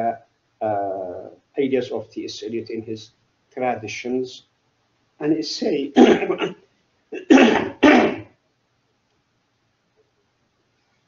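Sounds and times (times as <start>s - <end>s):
man coughing: 6.0s - 6.6s, 7.2s - 8.3s.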